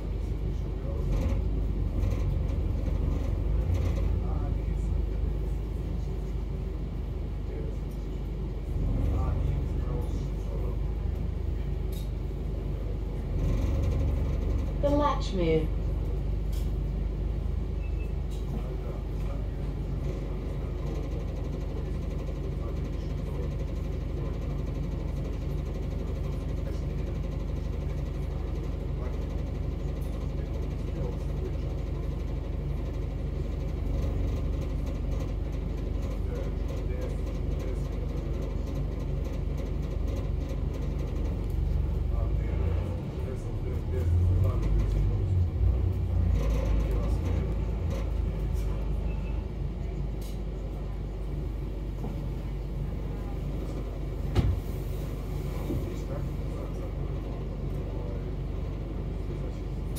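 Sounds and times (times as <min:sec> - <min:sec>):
bus engine rumbling: 0:00.0 - 0:59.9.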